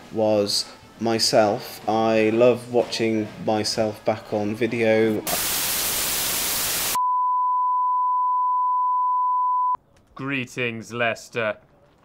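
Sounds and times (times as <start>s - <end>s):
tv static hiss: 5.3s - 7.0s.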